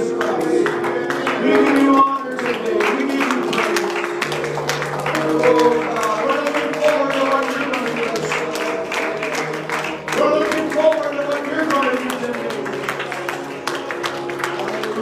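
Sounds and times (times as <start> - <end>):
worship band playing: 0.0 - 15.0.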